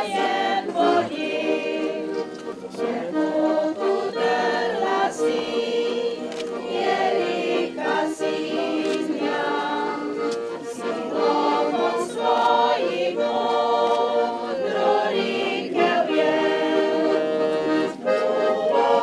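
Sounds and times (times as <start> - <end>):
choir singing in harmony: 0.0 - 19.0.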